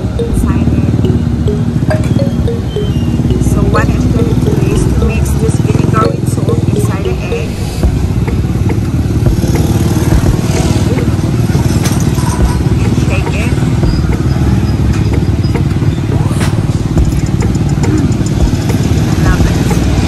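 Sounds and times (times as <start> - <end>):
motorcycle engine idling: 7.8 - 20.0.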